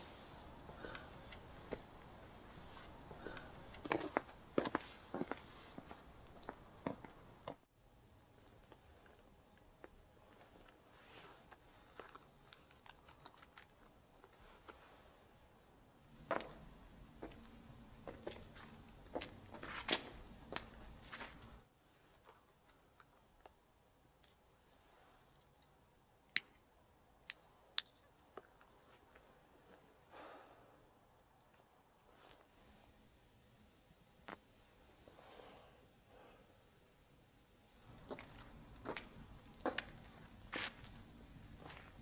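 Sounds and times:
footsteps: 0.0 - 7.6, 16.2 - 21.6, 37.9 - 42.0.

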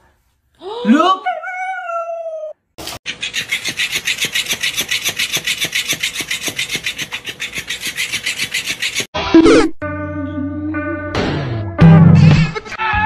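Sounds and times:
fast rasping scrape: 3.0 - 9.1.

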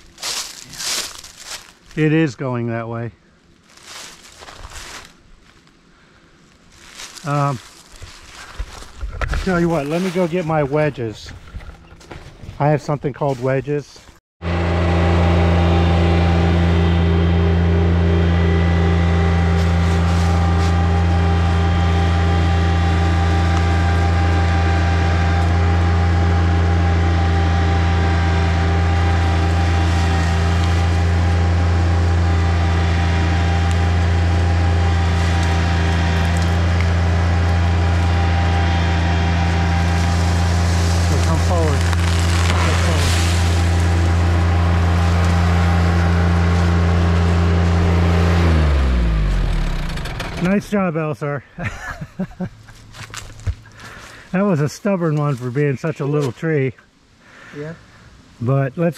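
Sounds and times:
wood crackling: 0.0 - 2.4, 3.4 - 14.2, 19.0 - 48.4, 52.6 - 55.6
tractor diesel engine running: 14.4 - 51.1.

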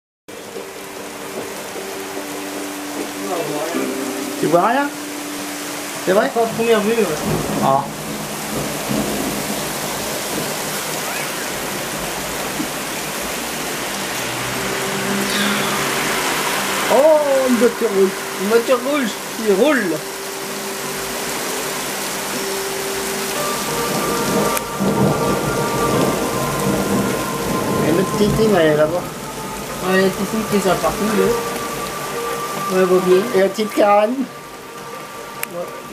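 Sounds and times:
heavy rain falling: 0.3 - 35.9
thunder rumble: 0.7 - 35.9
person speaking: 15.1 - 16.2, 29.8 - 31.4, 32.7 - 34.3.

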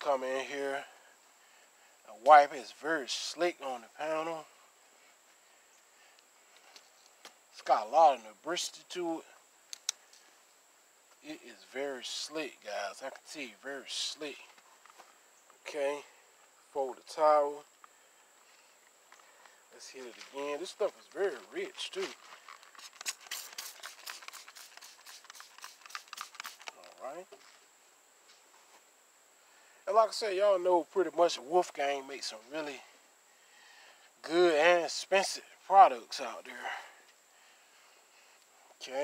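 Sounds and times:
faint outdoor background: 0.0 - 39.0
faint ticks: 9.7 - 10.3
spray bottle spritzing: 22.6 - 26.9.

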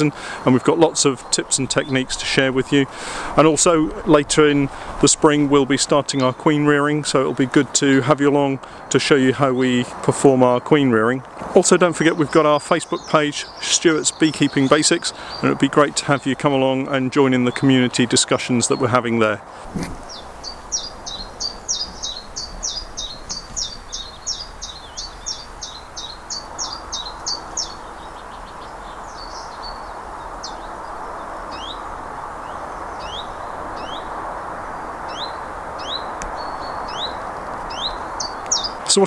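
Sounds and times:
small songbird singing: 12.0 - 17.9, 19.6 - 34.4, 35.0 - 38.9.

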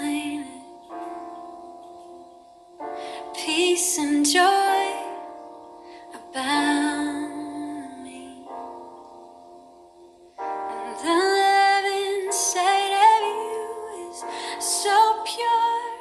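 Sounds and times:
woman singing: 0.0 - 0.8, 3.1 - 5.4, 6.0 - 8.6, 10.7 - 16.0.

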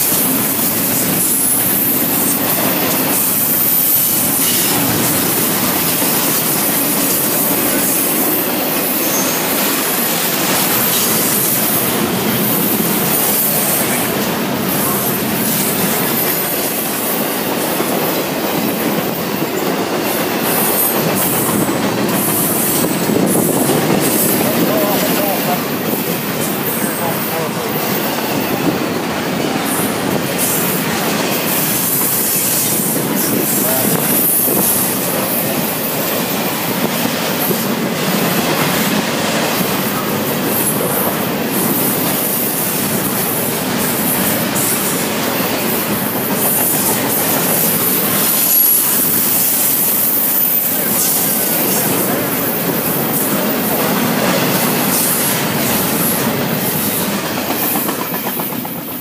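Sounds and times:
freight train rolling past: 0.0 - 59.0
high-pitched wheel squeals: 9.0 - 9.6.

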